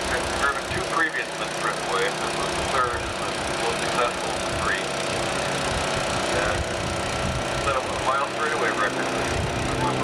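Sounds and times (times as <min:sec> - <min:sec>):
distant aircraft engine drone: 0:00.0 - 0:10.0.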